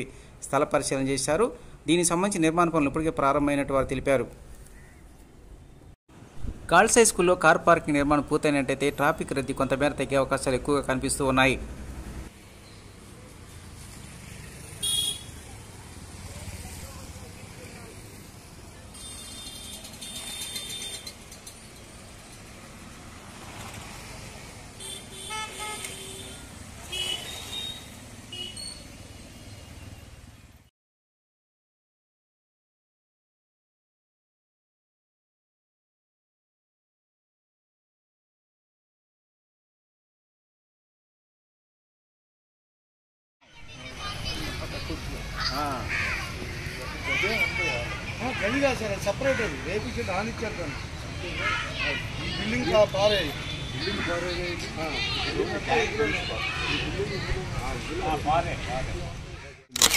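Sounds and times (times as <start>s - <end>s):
passing motorbikes and cars: 10.6s - 30.7s, 43.7s - 59.6s
vehicle horn toots: 14.8s - 15.3s, 24.8s - 26.3s, 26.9s - 28.8s.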